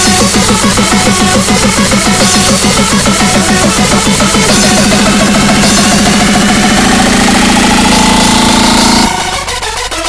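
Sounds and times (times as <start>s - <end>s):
buzzing synth bass: 0.0s - 10.0s
rising synth tone: 0.0s - 10.0s.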